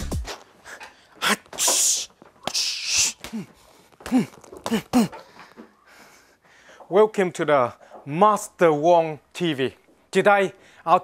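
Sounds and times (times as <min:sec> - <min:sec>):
electronic music with pounding beat: 0:00.0 - 0:00.4
man's short voiced burst: 0:01.2 - 0:03.4
sharp hissing exhale: 0:01.6 - 0:03.2.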